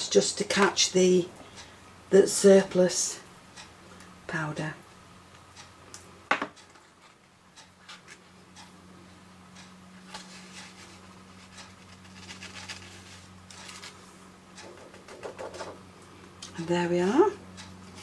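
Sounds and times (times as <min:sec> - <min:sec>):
steady low hum: 0:00.0 - 0:18.0
paper rustling: 0:10.1 - 0:14.0.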